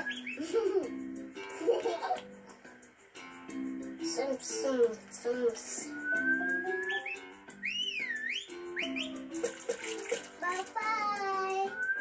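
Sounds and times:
cartoon music through tv speaker: 0.0 - 12.0
splashing water sound effect: 9.3 - 10.7.

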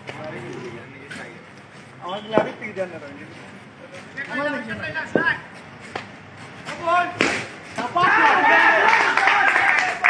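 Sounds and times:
people shouting: 7.8 - 10.0.

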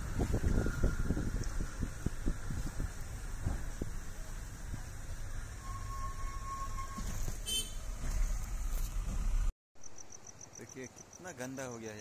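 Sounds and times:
moving vehicle rumble and wind: 0.0 - 12.0
crickets chirping: 9.8 - 12.0.

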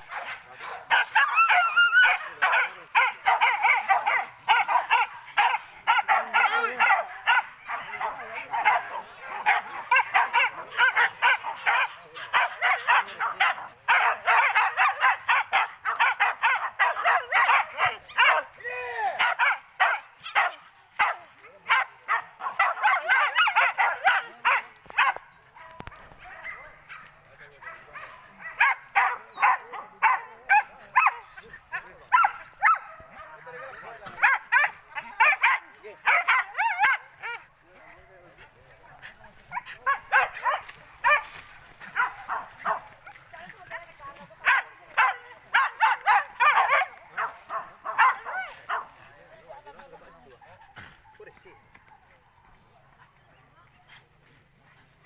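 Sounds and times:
dogs barking and yelping: 0.0 - 18.6, 19.2 - 37.6, 38.5 - 52.3.

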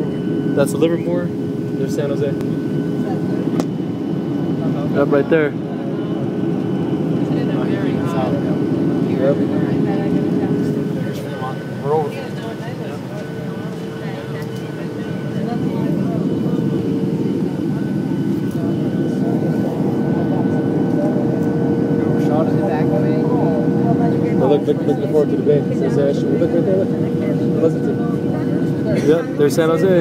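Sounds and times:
airplane cabin airflow rush: 0.0 - 30.0
faint voices: 0.0 - 30.0
jet engine whine: 0.0 - 30.0.

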